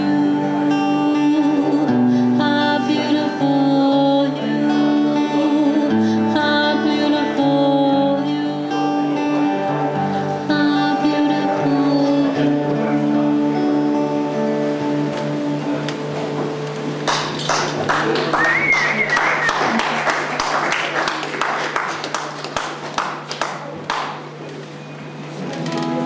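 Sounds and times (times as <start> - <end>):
acoustic guitar playing: 0.0 - 21.9, 24.2 - 26.0
audience clapping: 17.0 - 24.4
high cheer: 17.1 - 22.2.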